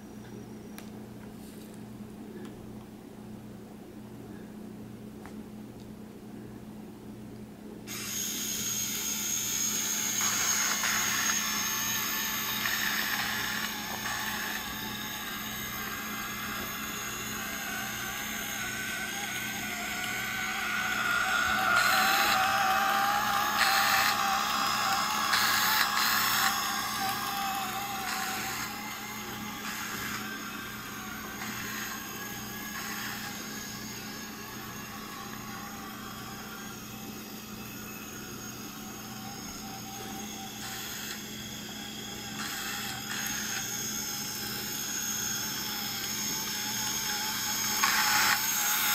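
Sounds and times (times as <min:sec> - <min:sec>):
toy electric motors whirring: 0:07.9 - 0:48.9.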